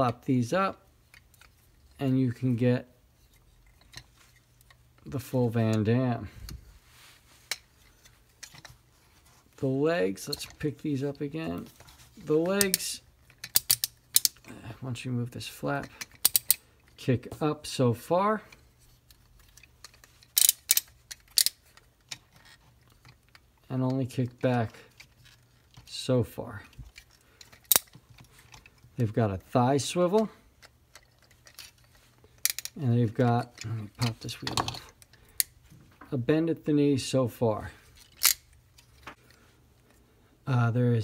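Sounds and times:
plastic toy joint clicks: 12.6s - 14.4s, 15.8s - 16.6s, 19.2s - 23.5s, 26.9s - 28.8s, 30.6s - 32.8s, 38.1s - 38.5s.

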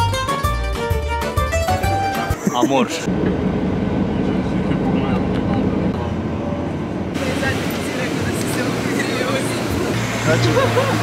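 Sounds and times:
people talking outdoors: 1.8s - 11.0s
vehicle road and engine drone: 2.4s - 11.0s.

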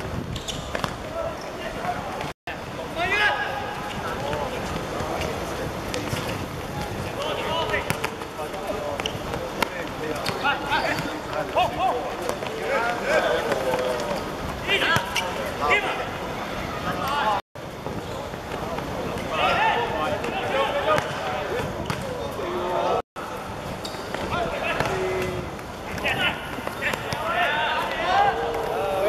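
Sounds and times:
background noise: 0.0s - 29.0s
players shouting: 24.3s - 29.0s.

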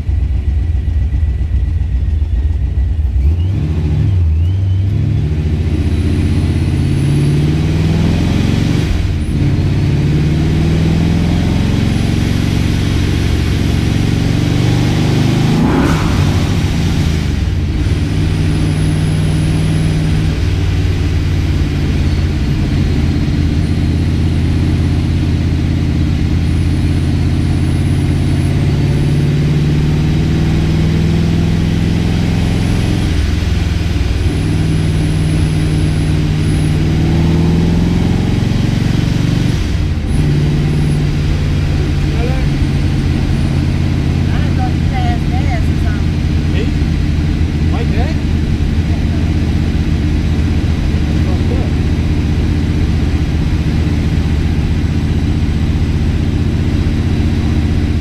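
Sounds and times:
car engine accelerating through gears: 3.0s - 58.0s.

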